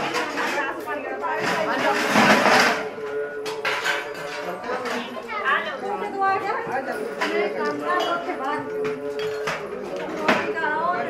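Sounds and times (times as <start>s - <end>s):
women chattering: 0.0s - 3.3s, 4.4s - 11.0s.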